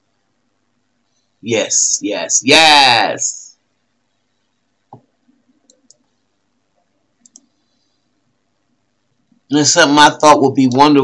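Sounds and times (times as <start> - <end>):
faint quick clicks: 4.9 - 6.2, 7.2 - 7.6.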